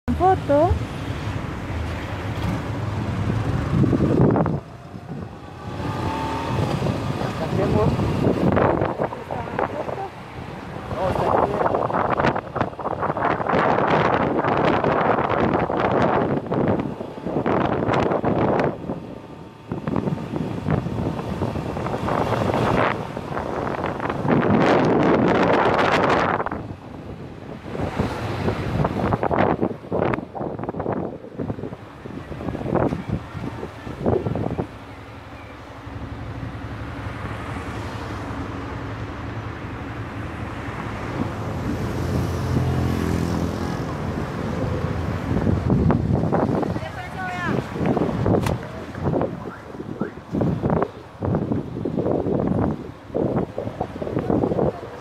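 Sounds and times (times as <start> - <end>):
wind buffeting microphone: 0.1 - 55.0.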